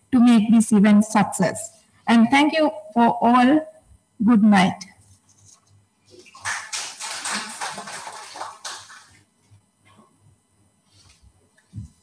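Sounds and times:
audience applause: 6.2s - 9.2s.

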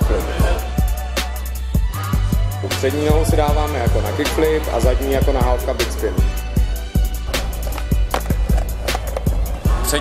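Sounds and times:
hip hop music: 0.0s - 10.0s
skateboard popping landing and rolling: 7.6s - 9.4s.

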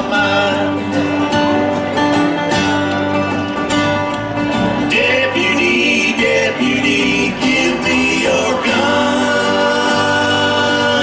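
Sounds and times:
country band playing: 0.0s - 11.0s.

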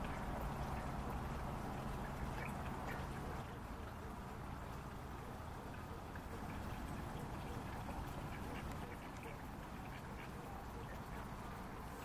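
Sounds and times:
ducks quacking quietly: 0.0s - 12.0s
low steady rumble: 0.0s - 12.0s.

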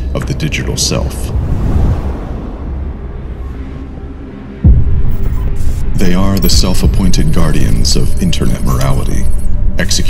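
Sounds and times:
low drone: 0.0s - 8.1s
deep boom with low rumble: 4.6s - 5.3s
hissing glitch noises: 5.1s - 10.0s.

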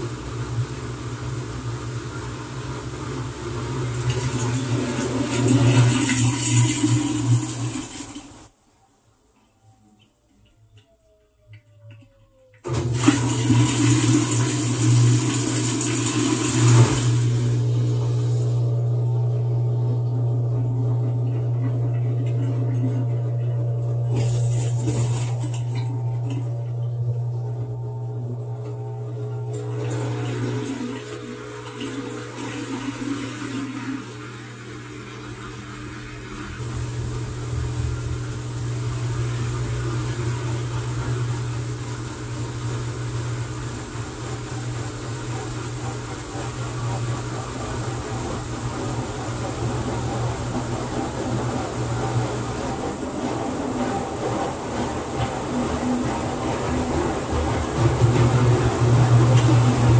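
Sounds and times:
water draining rush: 0.0s - 8.5s, 11.6s - 59.9s
washing machine humming: 0.0s - 59.9s.

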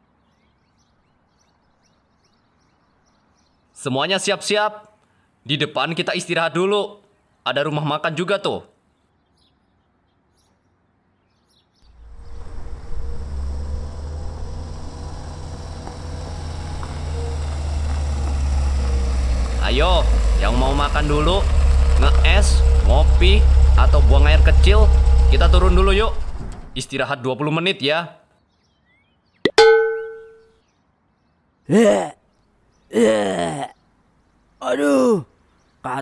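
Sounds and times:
vehicle engine humming: 11.8s - 26.9s
metallic ding: 29.5s - 30.5s.

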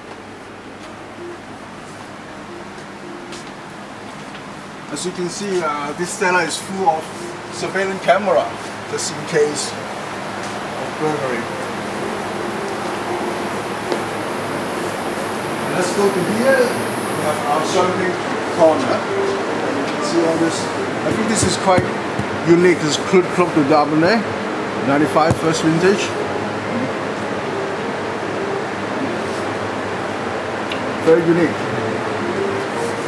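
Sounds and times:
cooling system hum and hiss: 0.0s - 33.0s.

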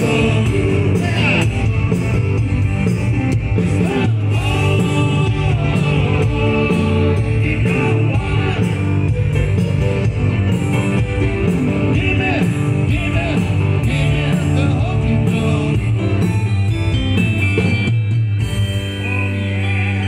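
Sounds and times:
live rock band playing: 0.0s - 20.0s.

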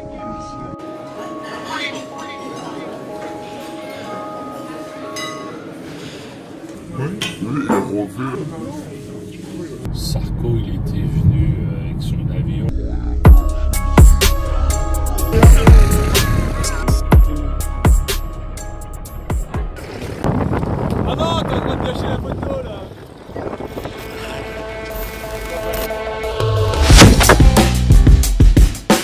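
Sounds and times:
people talking: 7.0s - 13.2s, 21.0s - 23.6s
car road and engine rumble: 9.9s - 13.2s
wind on microphone: 19.8s - 24.7s.

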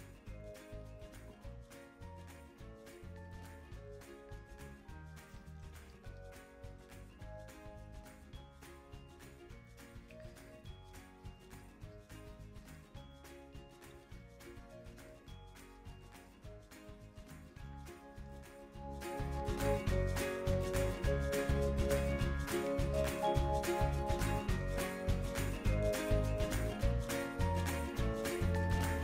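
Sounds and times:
quiet background music: 0.0s - 29.0s.

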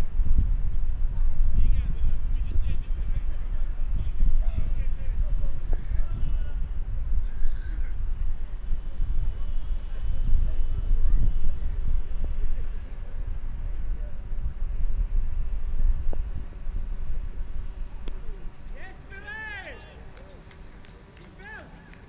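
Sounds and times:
wind rumbling on microphone: 0.0s - 19.4s.

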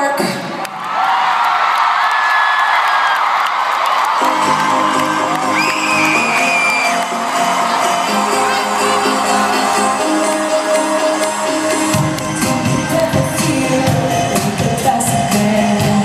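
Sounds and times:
crowd cheering and whooping: 0.6s - 12.8s.

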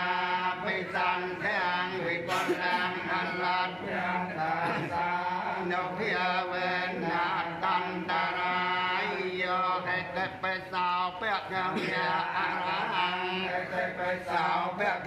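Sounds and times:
group chanting in unison: 0.0s - 15.0s.

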